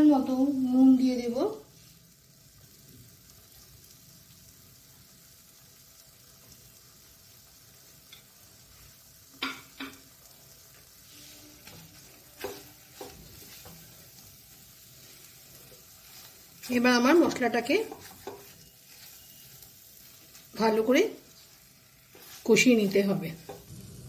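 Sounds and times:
paste frying in oil: 0.0s - 24.0s
spatula knocking against pan: 9.4s - 10.0s, 12.4s - 13.8s, 17.8s - 18.5s.

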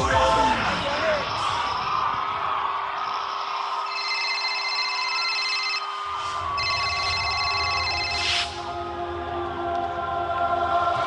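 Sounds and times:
electronic telephone ringing: 3.0s - 5.9s, 6.6s - 8.5s.

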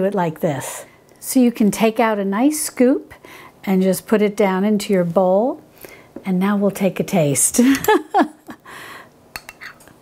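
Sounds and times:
spoon scraping glass bowl: 9.4s - 9.9s.

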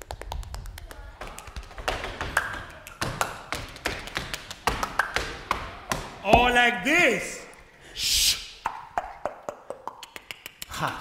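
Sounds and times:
body percussion taps and strikes: 0.0s - 6.6s.

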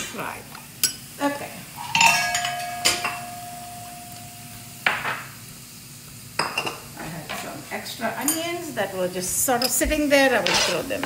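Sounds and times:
metal utensil striking ringing pan: 1.8s - 5.2s.

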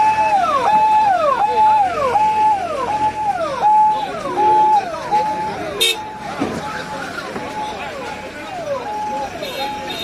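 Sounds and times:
electronic vehicle siren: 0.0s - 10.0s.

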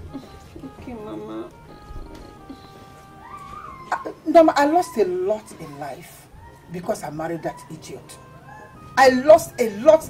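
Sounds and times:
soft background score: 0.0s - 10.0s.

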